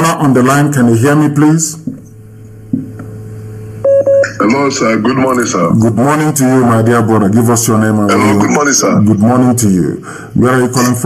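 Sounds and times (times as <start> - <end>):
phone line hum and noise: 0.0 - 11.0
short electronic beep: 3.8 - 4.4.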